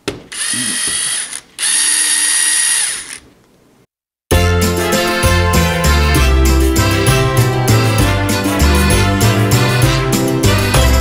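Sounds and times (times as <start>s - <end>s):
cordless drill motor whine: 0.3s - 3.3s.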